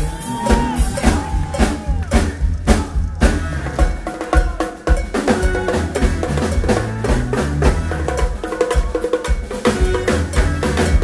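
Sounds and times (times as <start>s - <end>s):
drums and hand percussion: 0.0s - 11.0s
live funk band playing: 0.0s - 11.0s.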